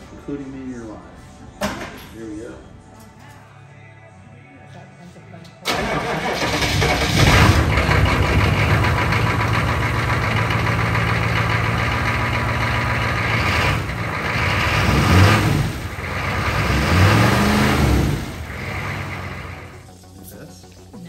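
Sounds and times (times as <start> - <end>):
truck engine starting and idling: 5.6 - 19.9.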